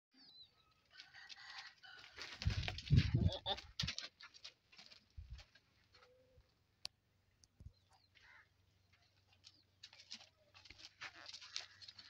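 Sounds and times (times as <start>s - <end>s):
small birds chirping: 5.8s - 12.0s.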